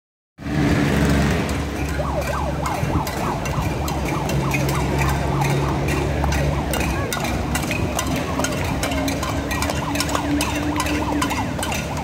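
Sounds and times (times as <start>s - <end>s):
siren yelping: 1.8s - 12.0s.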